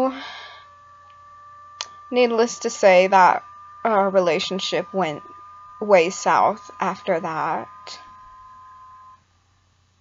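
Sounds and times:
electronic beep tone: 0:01.8 - 0:09.2.

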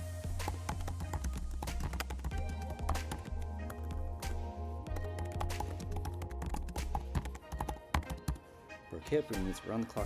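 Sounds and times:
rapid typing on keyboard: 0:00.5 - 0:04.0, 0:04.9 - 0:08.4.

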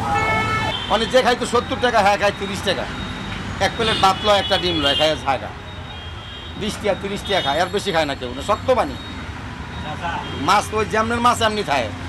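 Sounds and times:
steady traffic noise: 0:00.0 - 0:12.0
man speaking: 0:00.9 - 0:02.9, 0:03.6 - 0:05.6, 0:06.6 - 0:09.0, 0:09.9 - 0:12.0.

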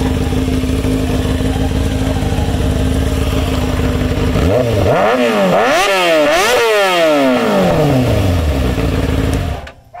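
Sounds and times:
motorcycle engine revving: 0:00.0 - 0:09.7.

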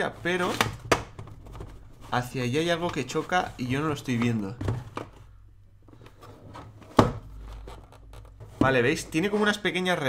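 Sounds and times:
plastic cube rubbing and twisting: 0:00.0 - 0:09.7.

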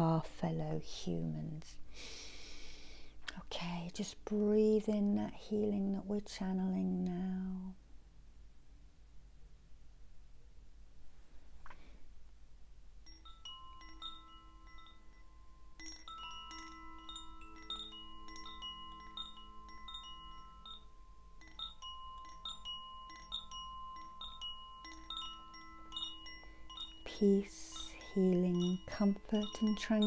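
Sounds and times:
metal chimes ringing: 0:13.0 - 0:30.0.

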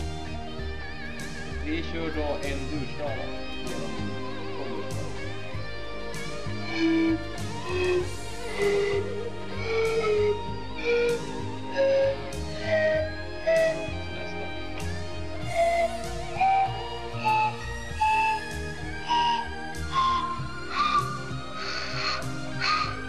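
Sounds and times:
pan flute notes rising: 0:06.2 - 0:23.0
breathy puffs of air: 0:06.5 - 0:14.0, 0:15.4 - 0:23.0.

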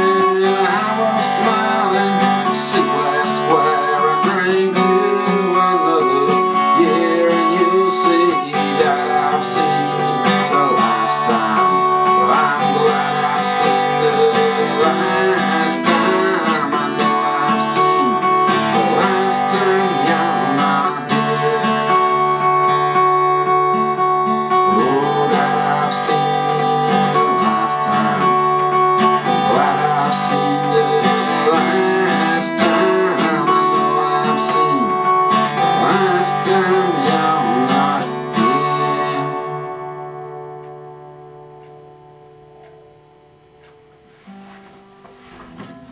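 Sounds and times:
acoustic guitar strumming: 0:00.0 - 0:45.9.

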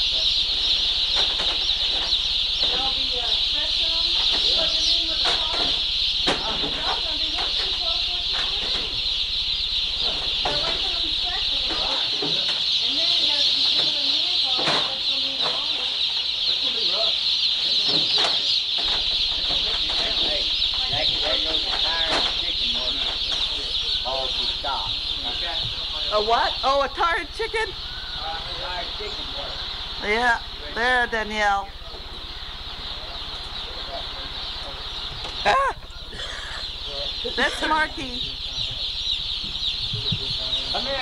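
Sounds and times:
baby chicks peeping: 0:00.0 - 0:41.0.

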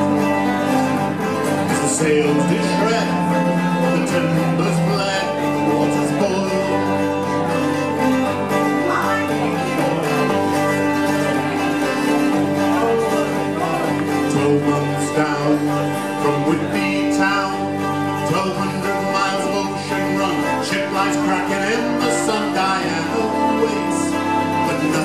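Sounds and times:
bowed cello notes: 0:00.0 - 0:25.0
picked guitar: 0:00.0 - 0:25.0
resonator guitar: 0:00.0 - 0:25.0.

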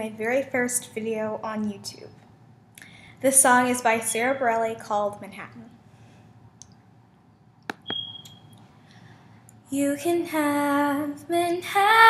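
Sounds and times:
sharp clicks: 0:07.7 - 0:08.4
high-pitched electronic beep: 0:07.7 - 0:08.5.

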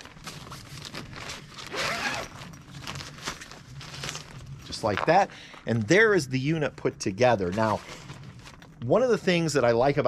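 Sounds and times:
zipper being drawn: 0:01.7 - 0:02.5.

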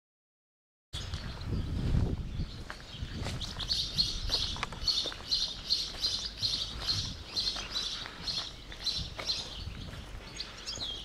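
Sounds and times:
small bird chirping: 0:02.3 - 0:11.0.

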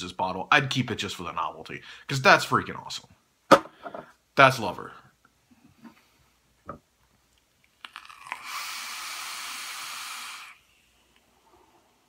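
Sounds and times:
electronic cigarette hiss: 0:08.1 - 0:11.2.

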